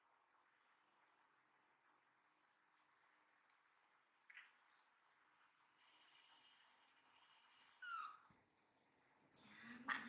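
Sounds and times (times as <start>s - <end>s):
baby monkey squeak: 7.8s - 8.2s.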